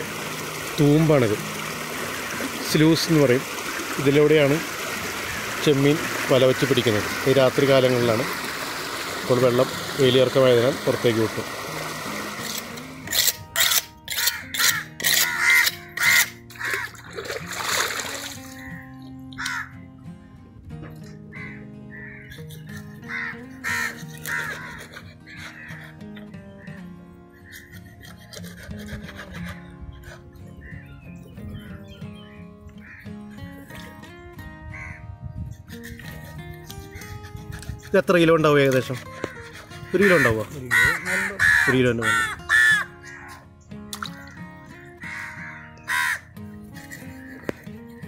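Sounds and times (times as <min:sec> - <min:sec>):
soft background music: 0:00.0 - 0:03.4, 0:09.3 - 0:48.0
crow cawing: 0:02.0 - 0:02.6, 0:14.1 - 0:17.2, 0:18.4 - 0:19.9, 0:21.3 - 0:27.8, 0:30.6 - 0:30.9, 0:32.8 - 0:33.5, 0:34.7 - 0:35.1, 0:39.1 - 0:43.5, 0:44.2 - 0:47.7
loud bird call: 0:39.3 - 0:43.4, 0:45.0 - 0:46.3.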